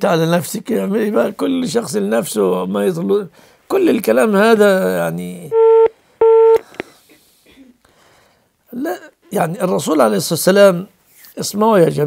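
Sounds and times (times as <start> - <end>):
telephone busy tone beep: 5.5 - 6.6
phone line click: 5.6 - 6.6.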